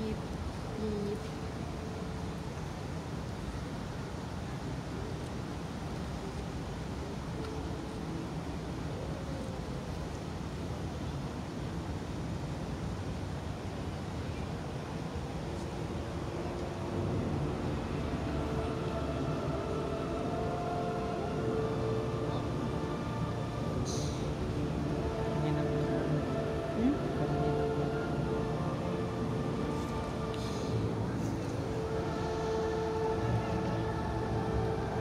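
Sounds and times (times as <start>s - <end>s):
faint distant music: 0.0s - 35.0s
low outdoor rumble: 0.0s - 35.0s.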